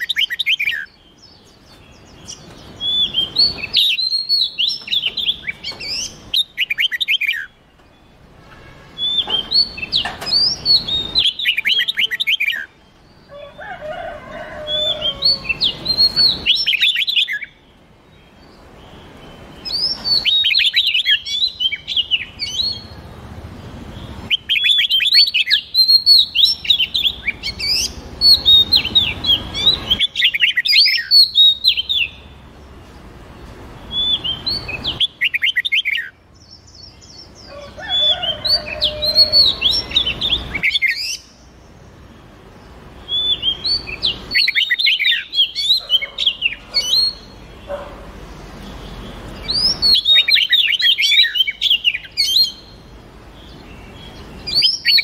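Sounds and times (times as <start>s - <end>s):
birds chirping whistled notes: 0.0s - 55.0s.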